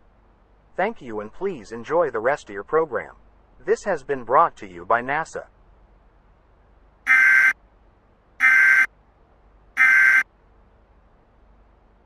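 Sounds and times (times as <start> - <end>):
buzzing digital data chirps: 7.1 - 7.6, 8.4 - 8.9, 9.8 - 10.2.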